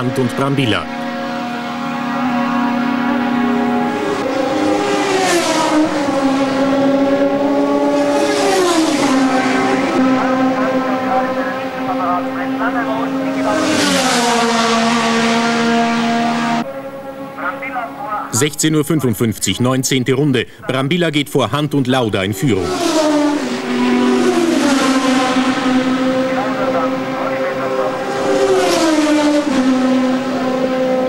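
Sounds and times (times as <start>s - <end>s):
racing car engines passing: 0.0s - 31.0s.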